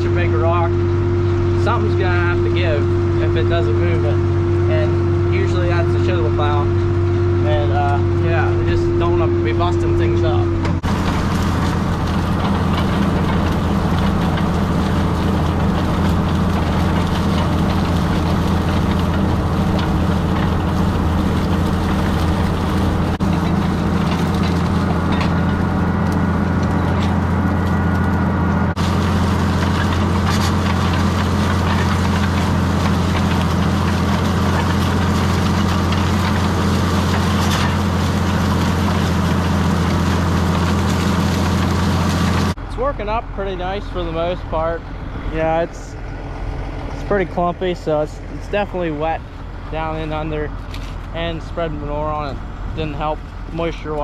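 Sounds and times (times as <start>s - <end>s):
tractor diesel engine droning: 0.0s - 54.0s.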